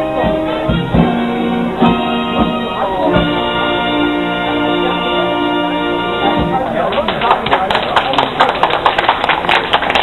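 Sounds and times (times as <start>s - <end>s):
concert band chord: 0.0s - 7.2s
audience clapping: 6.8s - 10.0s.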